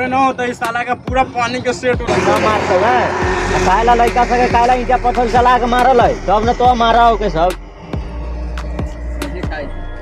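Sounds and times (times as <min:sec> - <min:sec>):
steady low hum: 0:02.1 - 0:09.1.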